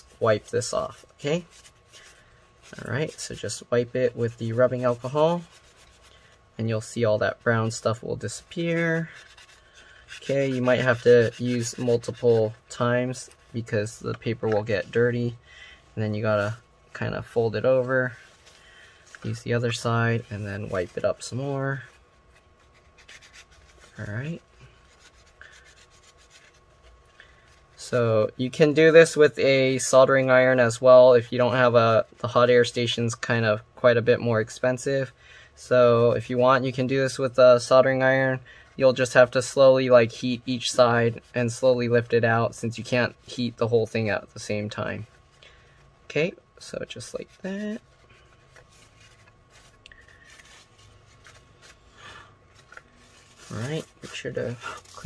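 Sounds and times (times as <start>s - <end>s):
paper towel scratching circuit board: 0.0s - 15.4s, 19.1s - 32.9s, 46.2s - 51.9s, 52.5s - 55.0s.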